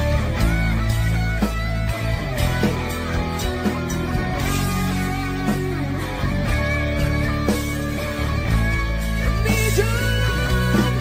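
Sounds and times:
held bass notes: 0:00.0 - 0:11.0
sliding lead guitar: 0:00.0 - 0:11.0.

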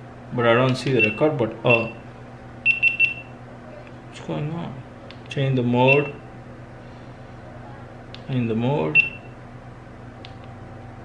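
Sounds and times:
high-pitched electronic beeps: 0:02.7 - 0:03.3, 0:05.9 - 0:06.2.

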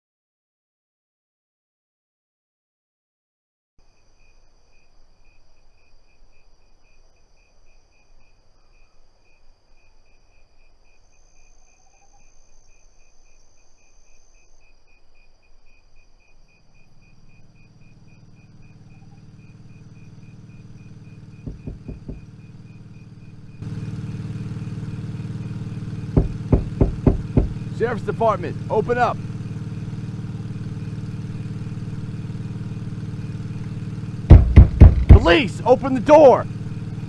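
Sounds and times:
crickets chirping: 0:03.8 - 0:37.0
insect drone: 0:03.8 - 0:37.0
vehicle engine: 0:16.6 - 0:37.0
sharp knocks: 0:21.4 - 0:22.3, 0:26.0 - 0:27.7, 0:34.3 - 0:35.4.

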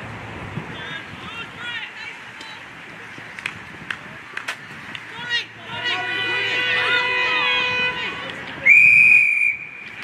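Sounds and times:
whistle blast: 0:08.6 - 0:09.9.

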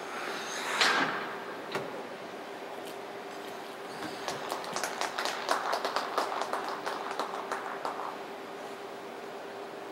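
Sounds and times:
faint steady hum: 0:00.0 - 0:09.9
audience clapping: 0:04.0 - 0:08.3.

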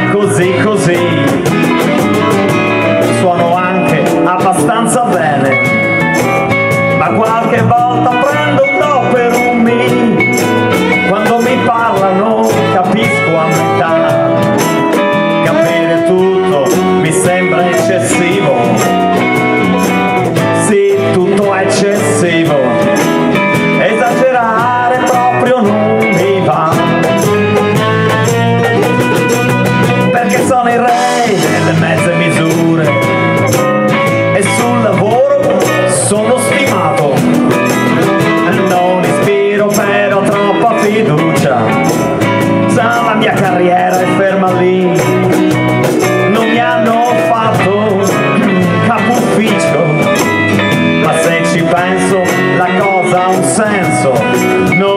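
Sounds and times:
bass guitar: 0:00.0 - 0:54.9
cajon drumming: 0:00.0 - 0:54.9
guitars: 0:00.0 - 0:54.9.

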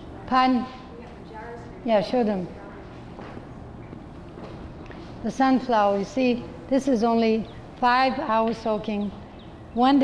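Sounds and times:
footsteps: 0:02.8 - 0:06.2.

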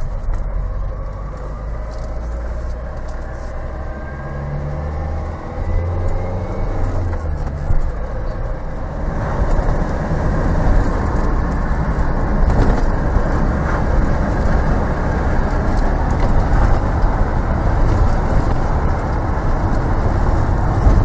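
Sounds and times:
diesel van engine under load: 0:00.0 - 0:21.0.

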